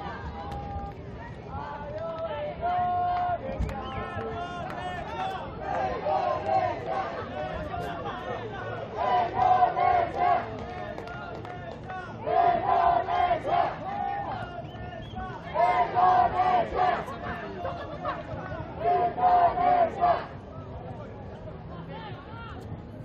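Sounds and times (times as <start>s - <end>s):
crowd noise: 0.0s - 23.0s
football crowd chanting: 4.7s - 11.2s, 11.8s - 14.7s, 15.4s - 18.0s, 18.7s - 20.4s.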